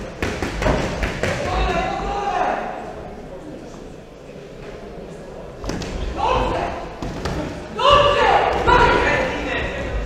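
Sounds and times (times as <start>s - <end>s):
people shouting: 7.7s - 9.8s.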